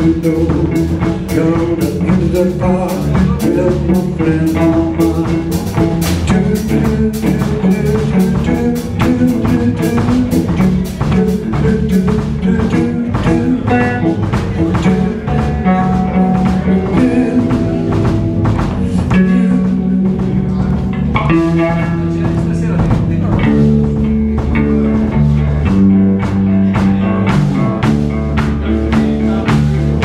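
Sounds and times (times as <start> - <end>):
bass guitar: 0.0 - 30.0
drum kit beat: 0.0 - 30.0
electric guitar: 0.0 - 30.0.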